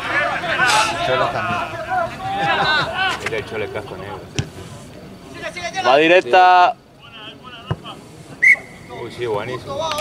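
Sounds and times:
faint distant voices: 0:00.0 - 0:10.0
referee's whistle blast: 0:08.4 - 0:09.0.

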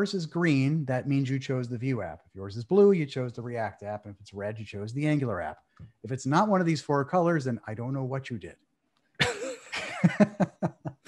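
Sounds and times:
man laughing: 0:09.2 - 0:11.0.

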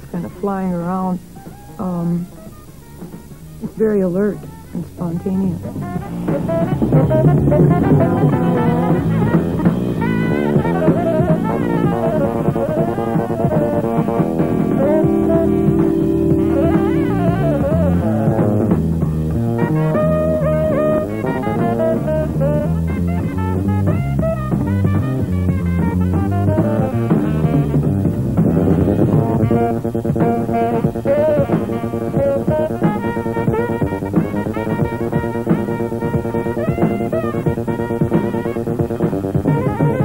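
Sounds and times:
drum kit: 0:00.0 - 0:40.0
electric bass: 0:00.0 - 0:40.0
saxophone improvising: 0:01.2 - 0:40.0.

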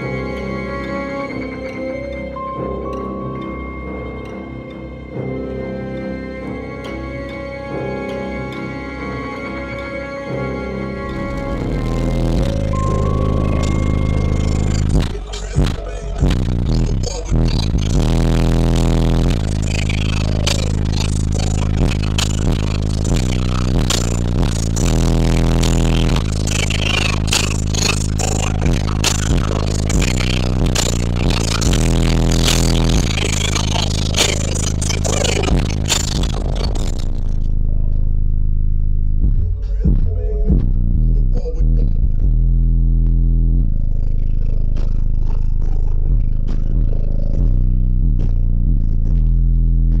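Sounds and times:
bass-heavy music through subwoofers: 0:00.0 - 0:50.0
speaker rattling and crackling: 0:11.2 - 0:38.1.

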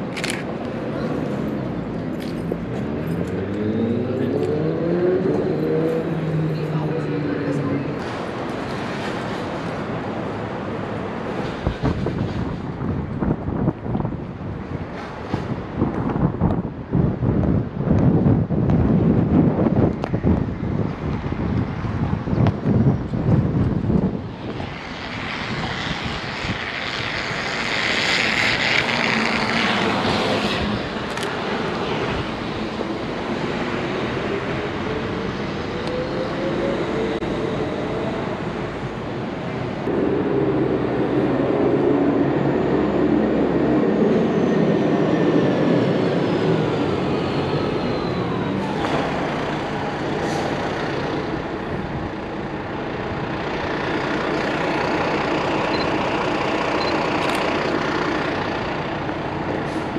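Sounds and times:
street traffic passing: 0:00.0 - 0:59.9
engine note rising: 0:02.9 - 0:08.0.

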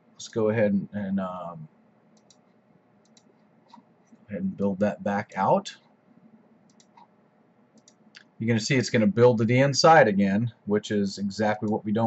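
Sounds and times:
computer mouse clicks: 0:02.1 - 0:03.9, 0:06.6 - 0:07.1, 0:07.7 - 0:08.3.

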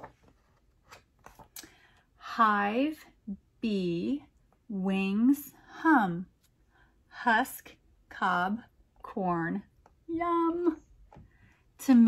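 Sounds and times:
book pages turning: 0:00.0 - 0:01.6.

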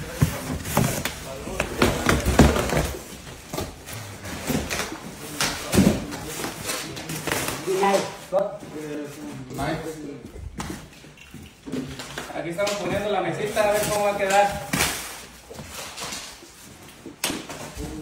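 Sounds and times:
cardboard and plastic wrap handled: 0:00.0 - 0:10.0, 0:12.0 - 0:18.0.

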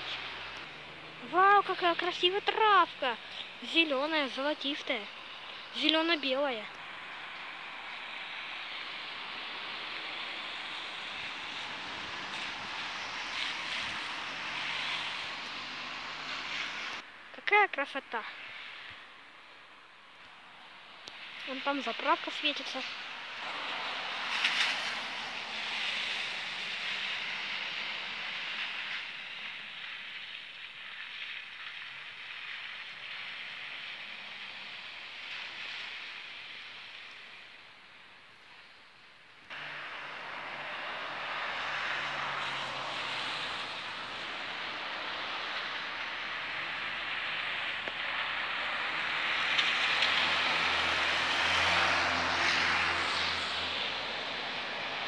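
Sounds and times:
vehicle engine hum: 0:00.0 - 0:17.1, 0:39.5 - 0:55.0
tyres hissing on wet road: 0:00.0 - 0:17.3, 0:17.9 - 0:55.0.

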